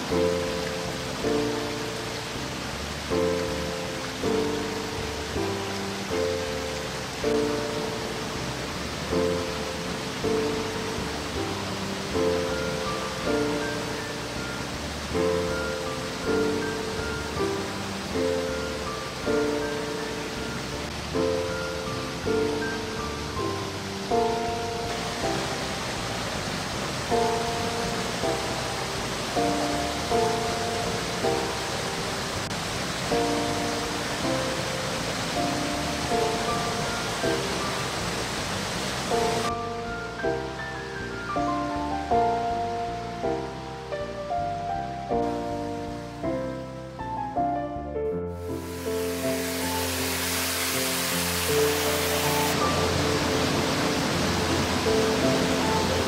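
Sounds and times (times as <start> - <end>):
waterfall rushing: 0.0 - 47.2, 48.3 - 56.0
instrumental background music chords: 0.0 - 56.0.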